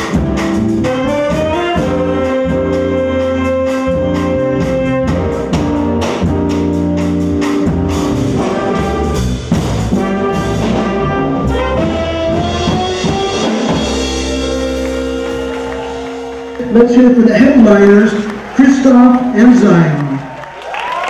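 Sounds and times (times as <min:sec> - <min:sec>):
trumpet: 0:00.0 - 0:18.4
drum kit: 0:00.0 - 0:18.6
grand piano: 0:00.0 - 0:19.6
saxophone: 0:00.4 - 0:07.6, 0:08.2 - 0:17.4.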